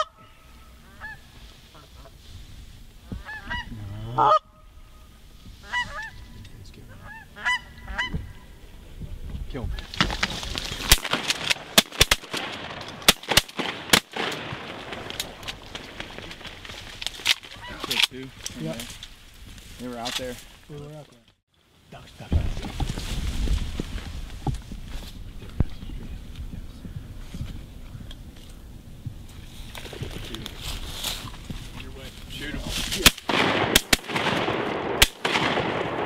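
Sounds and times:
geese honking: 0.0 - 2.2, 3.0 - 8.6.

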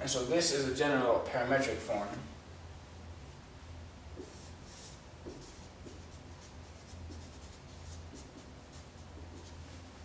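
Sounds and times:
steady low hum: 0.0 - 10.0
marker scratching on whiteboard: 4.2 - 9.6.

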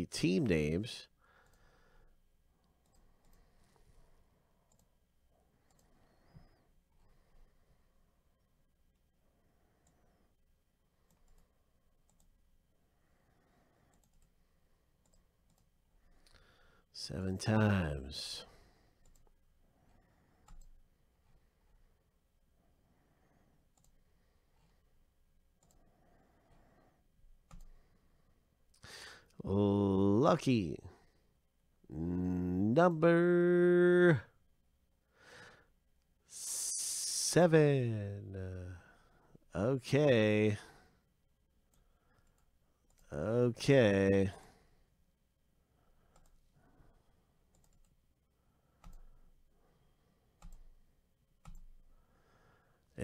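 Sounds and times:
computer mouse clicks: 2.6 - 3.8, 4.7 - 5.0, 5.6 - 6.5, 11.0 - 12.4, 13.8 - 14.4, 15.0 - 16.4, 20.4 - 20.8, 23.7 - 24.0, 25.6 - 25.8, 27.4 - 27.8, 41.7 - 43.1, 46.1 - 46.5, 47.5 - 48.0, 48.8 - 49.3, 50.4 - 50.8, 51.4 - 51.8.

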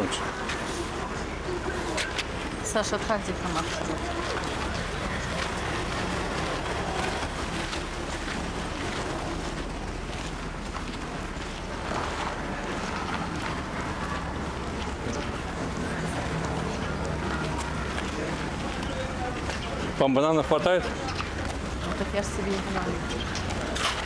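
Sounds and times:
outdoor street noise: 0.0 - 24.0.

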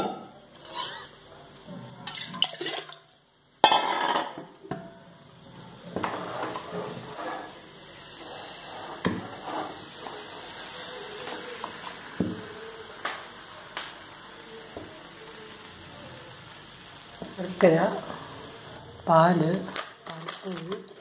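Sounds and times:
pressure cooker hissing: 5.7 - 19.8.

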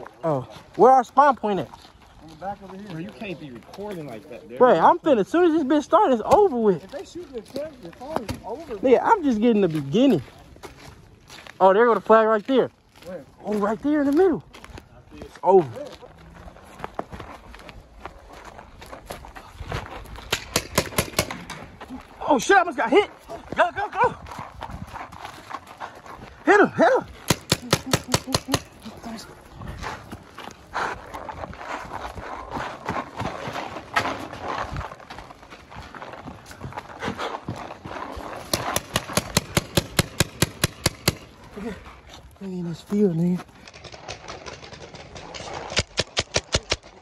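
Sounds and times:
footsteps on dirt: 0.0 - 46.1
paintball markers firing: 20.3 - 21.6, 27.2 - 28.8, 38.5 - 41.4, 43.7 - 47.0.

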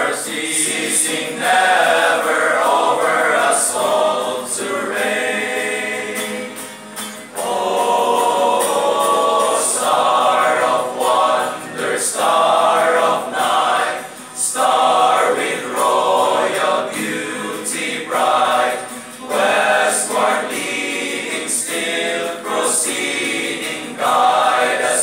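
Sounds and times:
male choir singing carol: 0.0 - 25.0.

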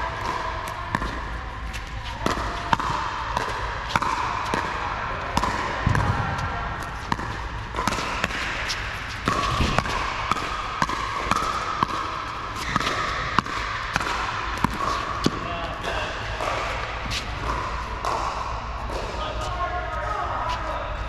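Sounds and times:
paddles hitting ball: 0.0 - 19.2
voices: 14.3 - 21.0.

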